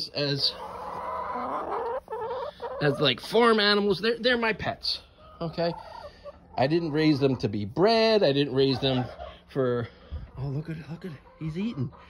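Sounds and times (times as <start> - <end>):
hens calling: 0.0 - 12.0.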